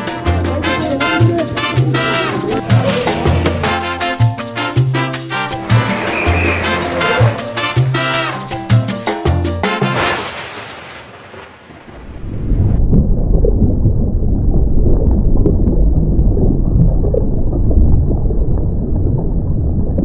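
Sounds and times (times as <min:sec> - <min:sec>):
deep rumbling: 0:00.0 - 0:09.0, 0:11.8 - 0:20.0
music: 0:00.0 - 0:10.2.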